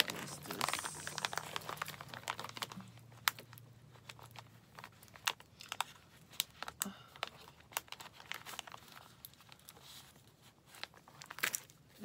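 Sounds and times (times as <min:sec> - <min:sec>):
plastic sleeves crinkling and clicking: 0:00.0 - 0:12.0.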